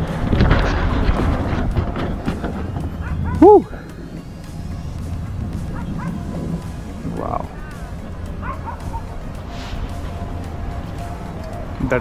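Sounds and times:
low background rumble: 0:00.0 - 0:12.0
dog yelping bark: 0:03.0 - 0:03.6, 0:05.7 - 0:06.2, 0:08.4 - 0:09.1.

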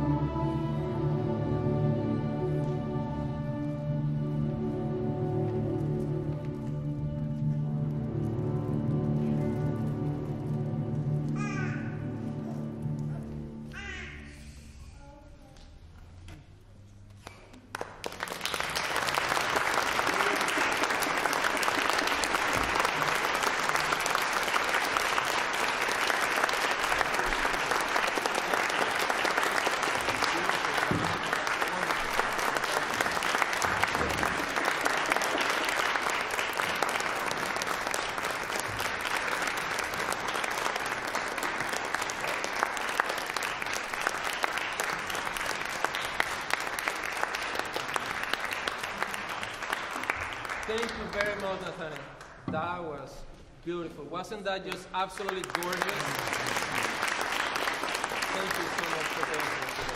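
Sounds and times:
audience applauding: 0:17.2 - 0:52.4, 0:54.7 - 0:59.9.

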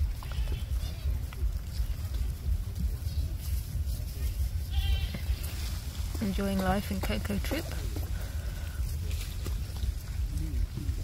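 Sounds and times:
low rumble: 0:00.0 - 0:11.0.

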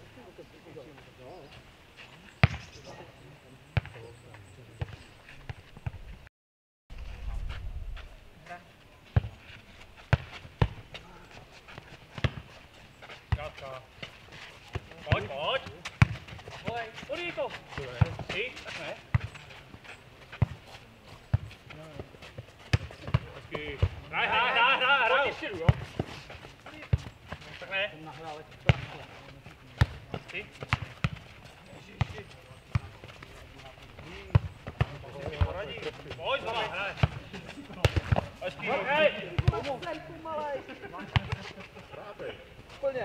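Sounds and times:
ball thudding on dirt court: 0:02.4 - 0:02.7, 0:03.8 - 0:04.0, 0:10.1 - 0:11.0, 0:22.7 - 0:24.0, 0:29.8 - 0:31.3, 0:36.4 - 0:39.8, 0:41.1 - 0:41.4
players shouting: 0:24.1 - 0:25.7.

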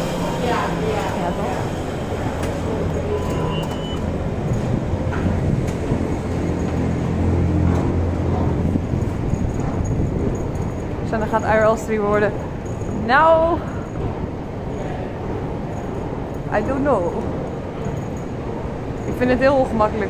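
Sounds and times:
short high beep: 0:03.1 - 0:04.1.

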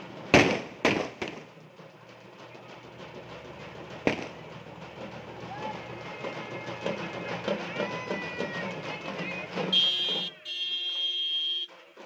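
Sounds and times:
firecrackers banging: 0:00.0 - 0:11.7
crowd voices: 0:01.6 - 0:11.1.

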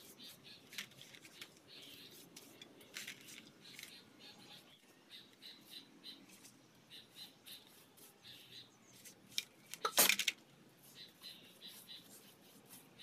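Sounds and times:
brush scrubbing concrete: 0:10.8 - 0:13.0.

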